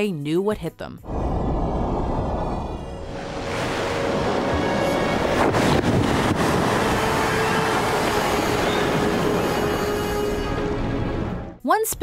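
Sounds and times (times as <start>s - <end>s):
sea water surging and splashing: 2.7s - 11.4s.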